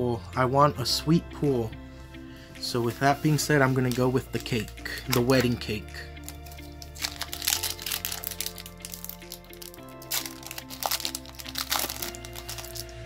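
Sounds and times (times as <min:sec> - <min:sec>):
foil wrapper crinkling: 0:03.8 - 0:05.6, 0:06.2 - 0:12.9.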